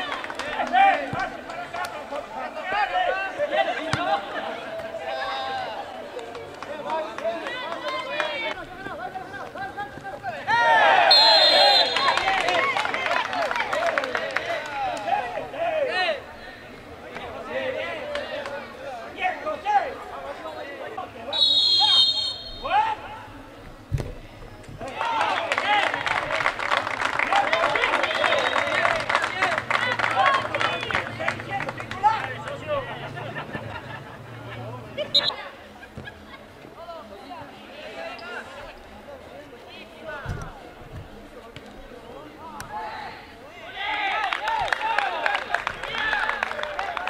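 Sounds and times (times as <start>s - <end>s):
people shouting at a distance: 10.3s - 12.8s, 21.3s - 23.3s
people calling out: 10.4s - 13.1s, 21.3s - 23.3s, 34.9s - 35.8s
referee whistle: 11.0s - 12.4s, 21.3s - 22.8s, 35.1s - 35.4s.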